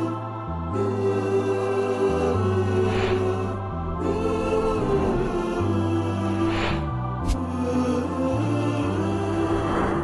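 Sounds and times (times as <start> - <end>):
held choir-like voices: 0.0 - 10.0.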